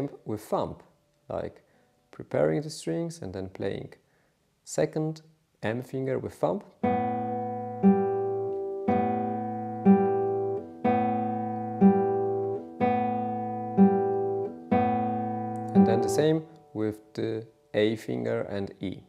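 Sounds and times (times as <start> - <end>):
classical guitar strings plucked: 6.8 - 16.8.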